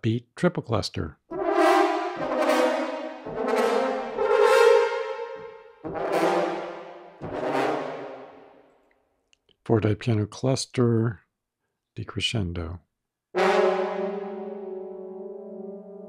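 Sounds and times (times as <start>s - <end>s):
dissonant french horn chords: 1.3s - 8.6s, 13.4s - 16.0s.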